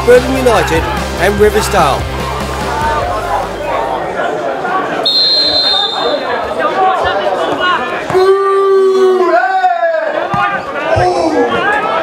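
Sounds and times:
background music: 0.0s - 4.2s
footballers calling out: 0.0s - 12.0s
referee's whistle blowing: 5.0s - 6.4s.

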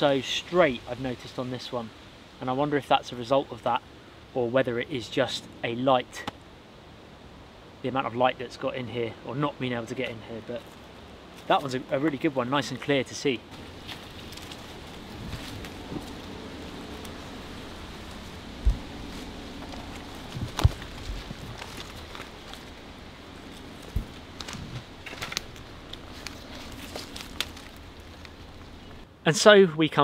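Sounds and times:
faint steady hum: 0.0s - 30.0s
footsteps through undergrowth: 13.5s - 29.0s
twigs snapping: 13.5s - 29.0s.

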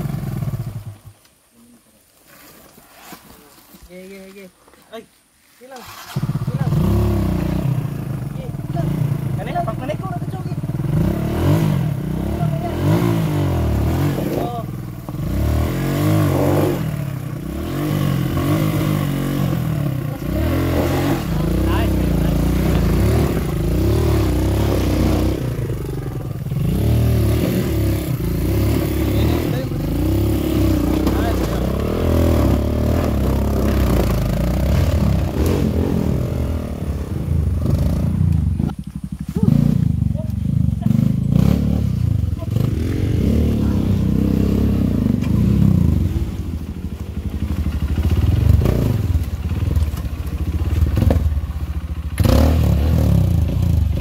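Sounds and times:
dirt bike engines revving: 5.7s - 54.0s.

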